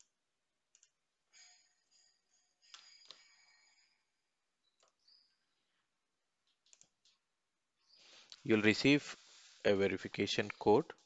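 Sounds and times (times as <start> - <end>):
keyboard and mouse clicks: 0.0 - 1.0, 4.6 - 5.2, 6.4 - 7.3.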